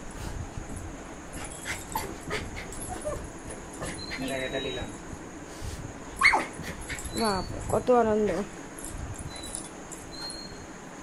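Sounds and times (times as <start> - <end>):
small dogs whimpering and yipping: 1.4 - 4.9, 6.2 - 7.8, 9.2 - 10.7.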